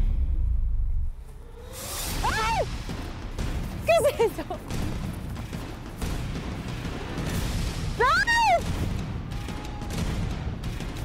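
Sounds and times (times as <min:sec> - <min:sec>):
deep rumble: 0:00.0 - 0:08.0.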